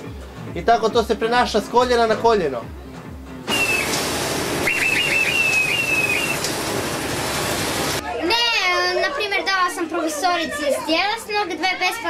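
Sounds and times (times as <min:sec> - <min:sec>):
high whistling squeals: 0:03.5 - 0:04.0, 0:04.6 - 0:06.5
fairground ride rushing noise: 0:03.5 - 0:08.0.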